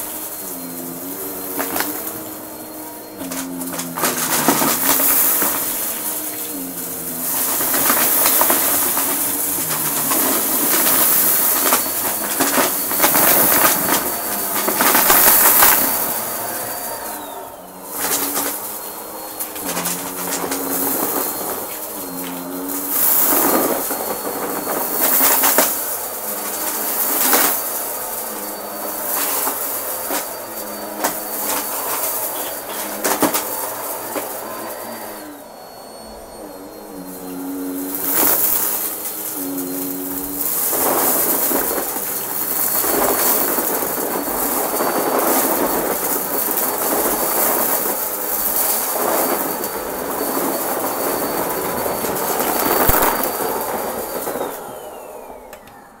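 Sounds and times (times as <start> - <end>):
debris crunching in vacuum: 0.0 - 56.0
vacuum cleaner whining: 0.0 - 56.0.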